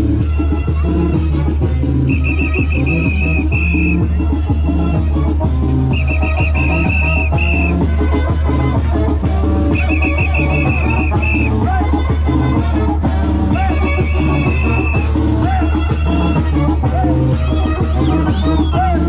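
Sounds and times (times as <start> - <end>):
loud dance music: 0.0 - 19.0
shrill trilling whistle: 2.1 - 4.1, 5.9 - 7.8, 9.7 - 11.6, 13.8 - 15.2, 17.4 - 19.0.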